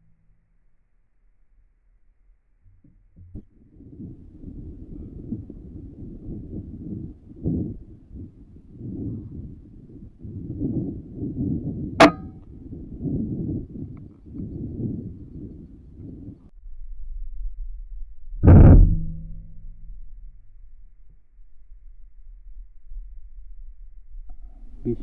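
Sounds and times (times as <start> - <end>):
wind buffeting microphone: 3.3 - 16.5
sharp metallic clang: 12.0 - 12.4.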